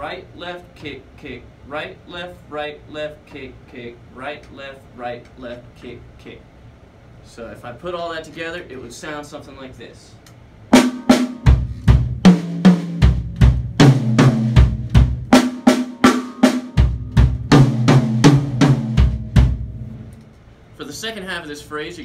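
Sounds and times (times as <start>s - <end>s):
bass drum kicks: 11.5s - 15.3s, 16.8s - 19.9s.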